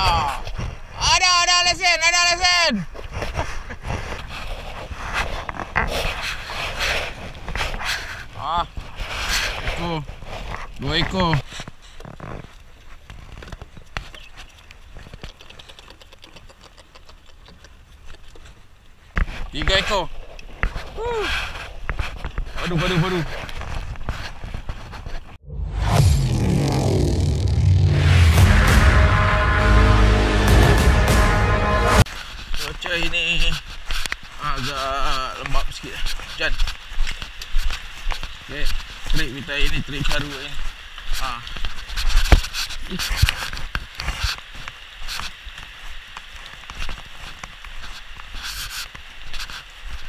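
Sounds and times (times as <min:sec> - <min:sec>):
wind: 0:00.0 - 0:50.0
loud intro music: 0:25.4 - 0:32.1.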